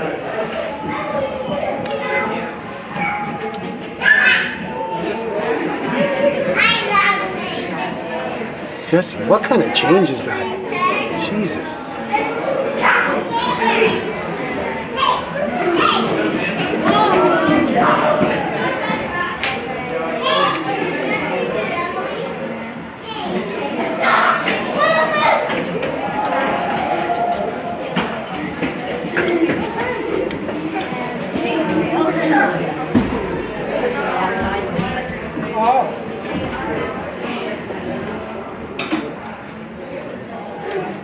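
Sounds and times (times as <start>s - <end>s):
spectators' indistinct voices: 0.0s - 41.0s.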